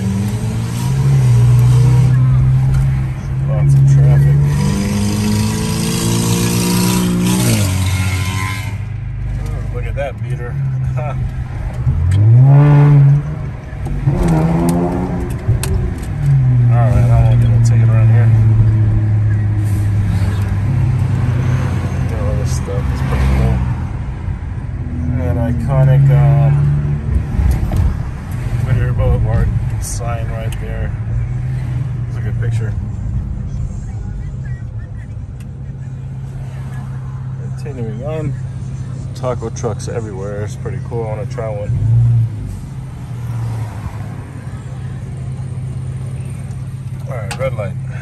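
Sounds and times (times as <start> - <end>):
car engine from inside cabin: 0.0 - 48.0.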